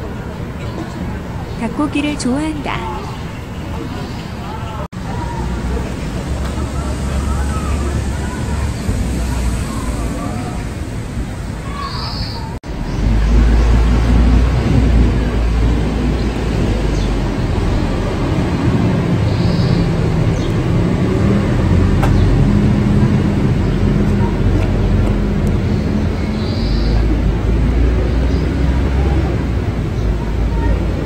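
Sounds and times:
faint engine hum: 0:00.0 - 0:31.0
low traffic rumble: 0:00.0 - 0:31.0.

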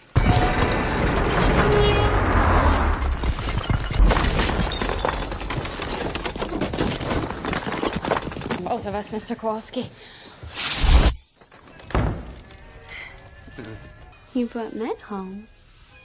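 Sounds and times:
glass shattering: 0:00.0 - 0:02.1, 0:03.0 - 0:08.6
wall bursting apart: 0:00.0 - 0:05.1
debris crashing and clattering: 0:00.0 - 0:08.6.

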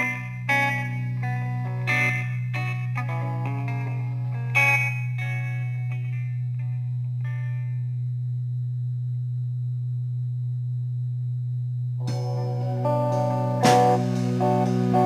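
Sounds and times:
guitar playing: 0:00.0 - 0:08.0, 0:12.0 - 0:15.0
guitar chord ringing: 0:00.0 - 0:08.5, 0:12.0 - 0:15.0
steady low drone: 0:00.0 - 0:15.0.

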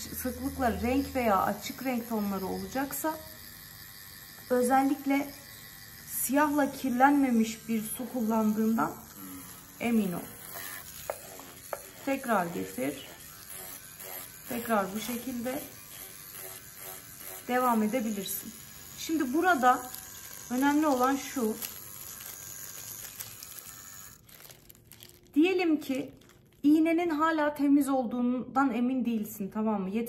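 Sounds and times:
tattoo machine running: 0:00.0 - 0:25.2
paper tissue rustling and scraping: 0:19.9 - 0:26.6.

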